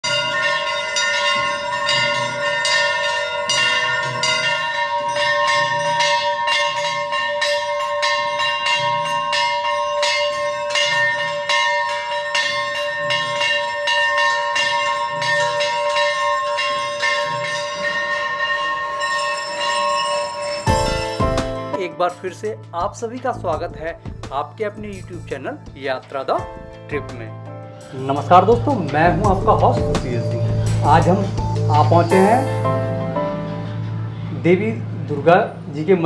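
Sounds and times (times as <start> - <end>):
large brass bells ringing: 0.0 - 21.8.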